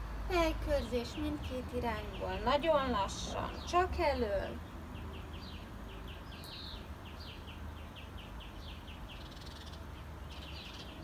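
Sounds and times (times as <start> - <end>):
small bird chirping: 0.7 - 11.0.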